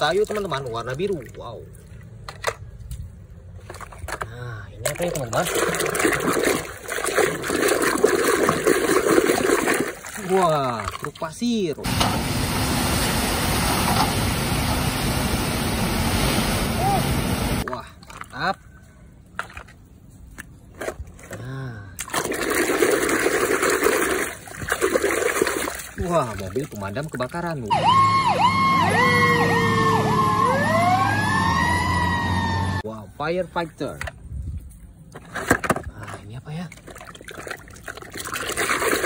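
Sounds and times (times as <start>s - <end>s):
dump truck engine running: 11.9s - 17.6s
fire engine siren: 27.7s - 32.8s.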